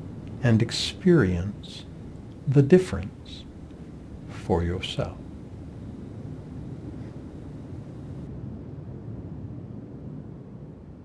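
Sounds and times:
faint hiss: 0:00.0 - 0:08.3.

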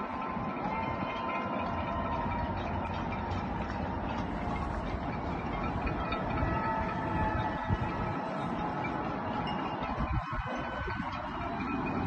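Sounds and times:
distant traffic rumble: 0:00.0 - 0:12.0.

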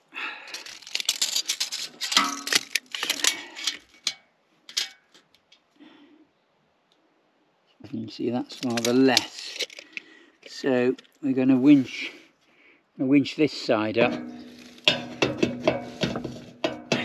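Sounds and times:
tape measure rattling and clicking: 0:00.5 - 0:05.0, 0:08.5 - 0:10.0.

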